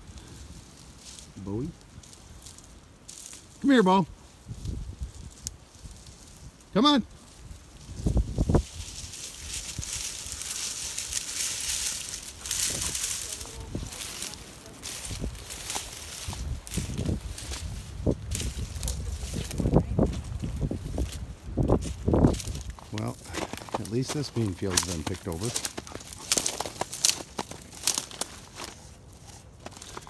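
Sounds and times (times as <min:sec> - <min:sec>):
dry plants rustling and crackling: 0:00.0 - 0:30.0.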